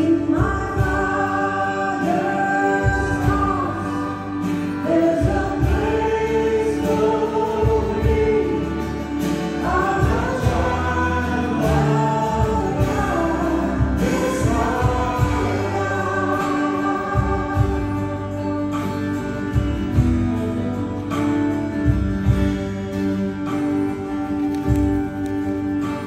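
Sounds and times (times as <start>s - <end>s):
voices singing together: 0.0s - 19.0s
acoustic guitar: 0.0s - 26.0s
drums: 0.0s - 26.0s.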